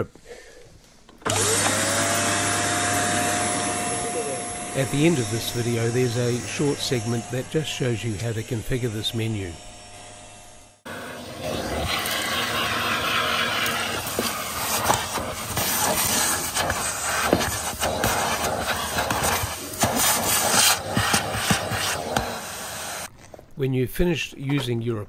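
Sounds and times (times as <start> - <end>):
vacuum cleaner suction: 1.2 - 9.6, 10.8 - 23.1
nozzle scraping carpet: 10.9 - 23.1.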